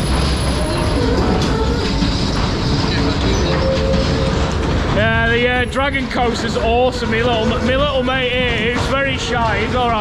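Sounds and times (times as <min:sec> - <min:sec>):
ride cars rolling on track: 0:00.0 - 0:10.0.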